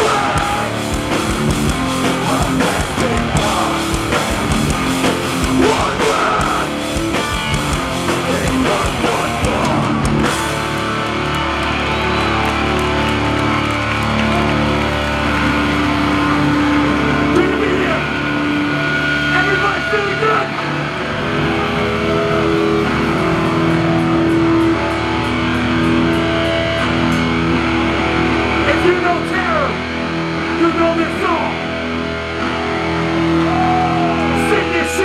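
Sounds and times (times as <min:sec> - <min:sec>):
distorted electric guitars and bass: 0:00.0 - 0:35.0
shouted vocals: 0:05.4 - 0:06.8, 0:33.1 - 0:35.0.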